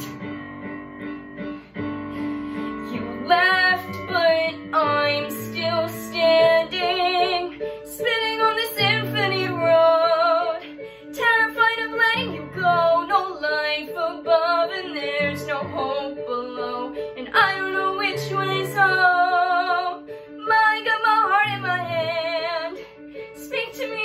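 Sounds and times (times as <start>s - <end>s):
instrumental accompaniment: 0.0s - 24.0s
woman singing with vibrato: 2.8s - 22.8s.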